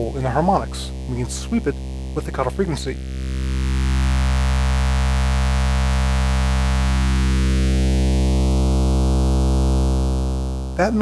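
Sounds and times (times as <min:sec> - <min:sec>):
low synthesizer note with sweeping filter: 0:00.0 - 0:11.0.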